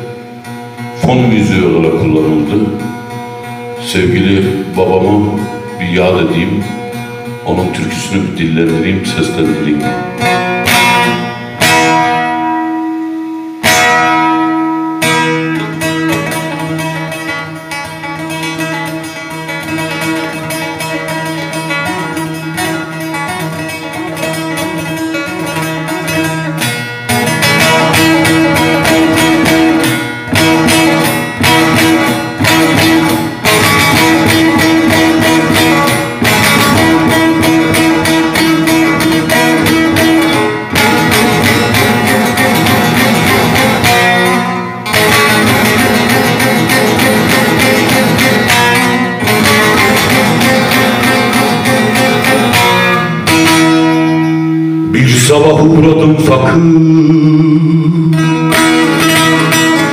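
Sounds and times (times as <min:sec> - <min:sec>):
long-necked lute played with plectrum: 0:00.0 - 0:59.9.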